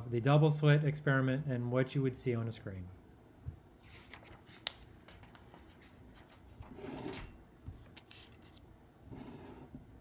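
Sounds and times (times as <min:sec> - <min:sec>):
paper rustle: 0:03.8 - 0:06.7, 0:07.7 - 0:08.6.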